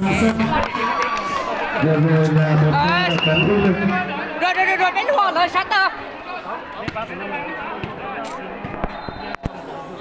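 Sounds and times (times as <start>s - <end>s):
spectators chattering: 0.0s - 10.0s.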